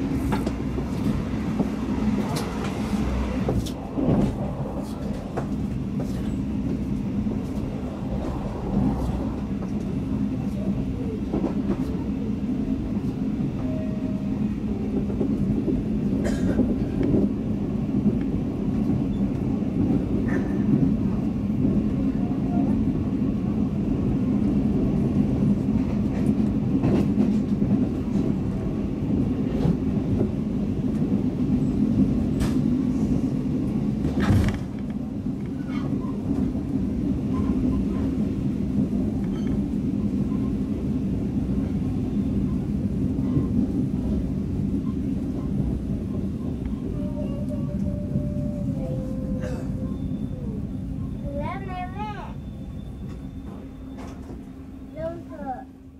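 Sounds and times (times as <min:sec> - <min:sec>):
train wheels rumbling on rails: 0:00.0 - 0:55.9.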